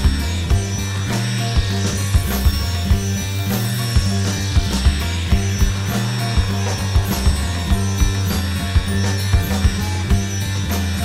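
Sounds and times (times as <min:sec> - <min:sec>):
cymbal wash: 0:00.0 - 0:11.0
drum strikes: 0:00.0 - 0:11.0
held bass notes: 0:00.0 - 0:11.0.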